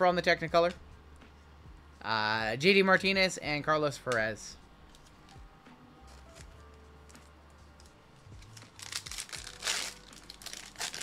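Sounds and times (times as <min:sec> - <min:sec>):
card pack wrapper tearing and crinkling: 0:07.8 - 0:11.0.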